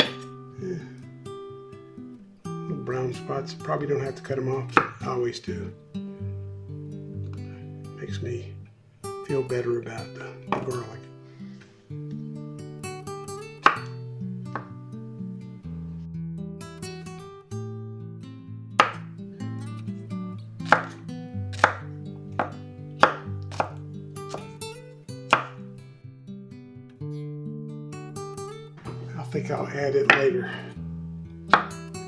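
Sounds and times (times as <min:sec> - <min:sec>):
knife chopping on wooden board: 0:00.0 - 0:00.3, 0:04.8 - 0:05.0, 0:10.5 - 0:10.8, 0:13.6 - 0:14.7, 0:18.8 - 0:19.0, 0:20.6 - 0:24.5, 0:25.3 - 0:25.6, 0:31.5 - 0:31.8
acoustic guitar music: 0:00.0 - 0:32.0.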